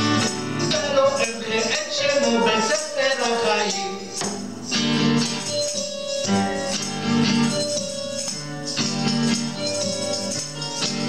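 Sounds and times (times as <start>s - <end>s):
acoustic guitar strumming: 0.0s - 11.0s
electronic keyboard chords: 0.0s - 11.0s.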